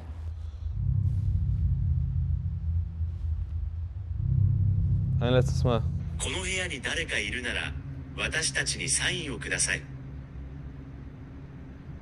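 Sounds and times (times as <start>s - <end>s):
low droning rumble: 0.0s - 12.0s.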